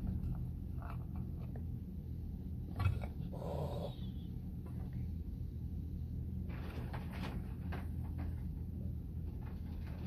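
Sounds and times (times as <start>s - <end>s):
steady low hum: 0.0s - 10.0s
cat growling: 2.7s - 4.4s.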